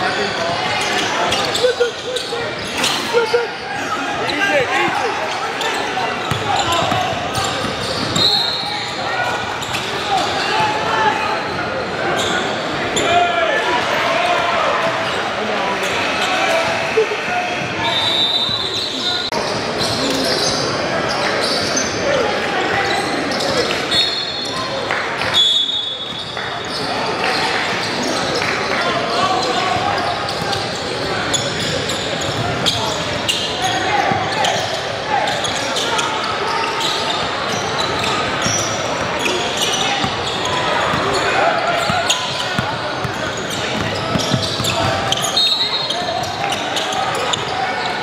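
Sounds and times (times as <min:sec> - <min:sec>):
indistinct crowd chatter: 0:00.0 - 0:48.0.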